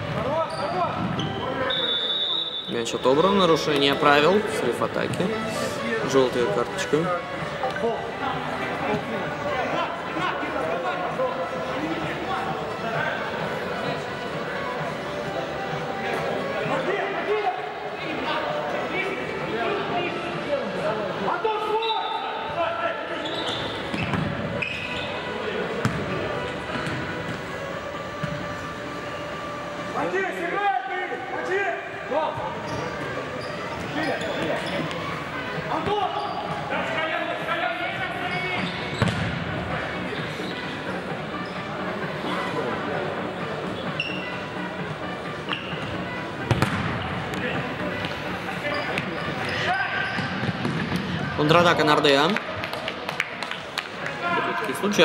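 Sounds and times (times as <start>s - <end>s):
voices in a hall: 0.0s - 55.0s
sharp ball kicks: 39.0s - 39.3s, 46.5s - 47.0s.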